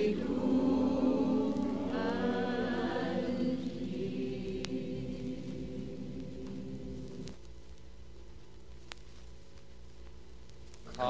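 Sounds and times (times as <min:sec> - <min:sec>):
choir holding a chord: 0:00.0 - 0:07.4
record playback hum and hiss: 0:00.0 - 0:11.0.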